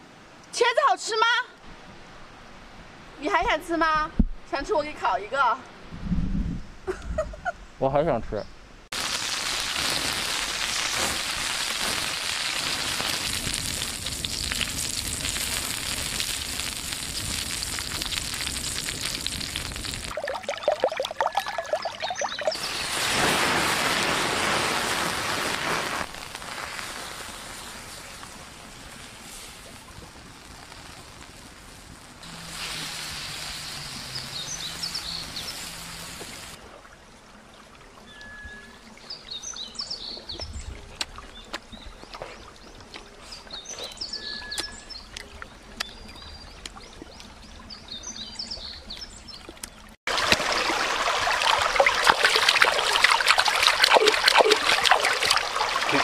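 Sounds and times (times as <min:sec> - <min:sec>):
food sizzling on hot stone: 0:08.9 - 0:20.2, 0:22.2 - 0:36.6
wood fire hissing and crackling: 0:08.9 - 0:20.4, 0:22.4 - 0:36.6, 0:50.1 - 0:56.0.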